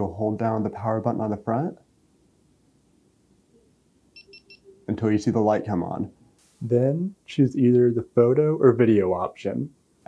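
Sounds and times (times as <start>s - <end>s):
short high electronic beeps: 4.2s - 4.8s.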